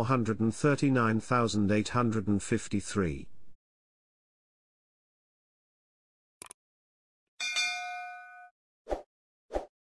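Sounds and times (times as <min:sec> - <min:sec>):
bell-like notification chime: 0:07.4 - 0:08.5.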